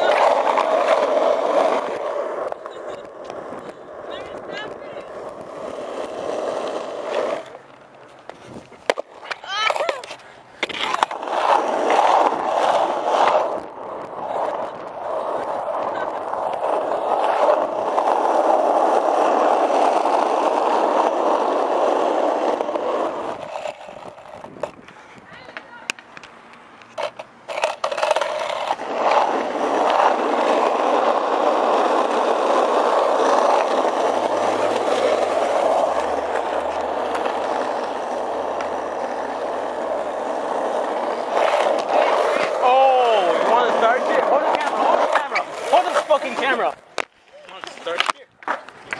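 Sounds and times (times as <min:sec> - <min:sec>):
skateboard wheels rolling on asphalt: 0:00.0 - 0:48.9.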